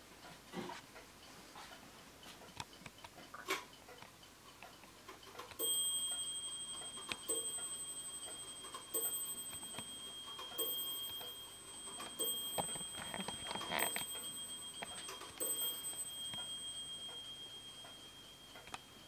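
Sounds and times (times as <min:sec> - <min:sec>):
clock ticking: 0:00.1 - 0:19.0
wall clock striking: 0:05.5 - 0:19.0.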